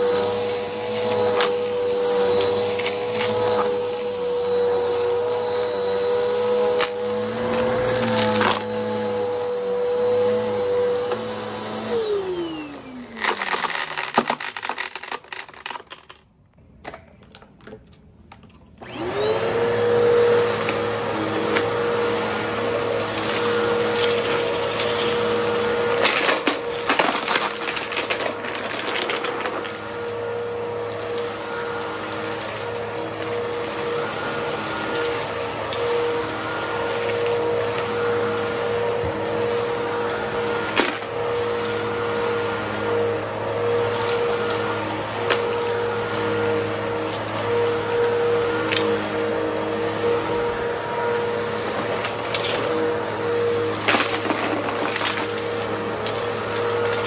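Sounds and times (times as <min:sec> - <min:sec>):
vacuum cleaner motor running: 0:00.0 - 0:16.0, 0:18.8 - 0:57.0
debris crackling up vacuum: 0:18.8 - 0:41.5, 0:49.8 - 0:57.0.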